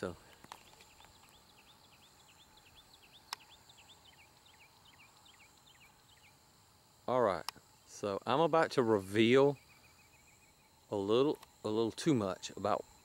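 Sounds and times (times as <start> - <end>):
bird chirping: 0.0 - 6.5, 7.4 - 13.0.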